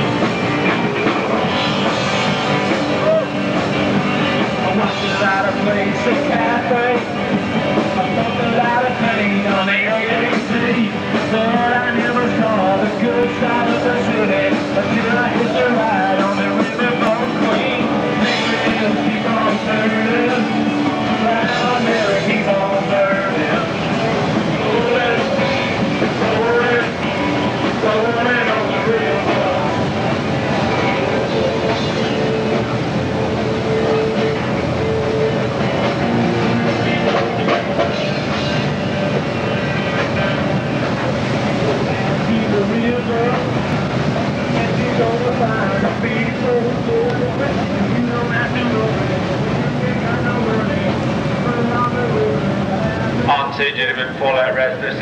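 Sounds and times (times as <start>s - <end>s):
churning sea: 0.0s - 55.0s
faint voices: 0.0s - 55.0s
music: 0.0s - 55.0s.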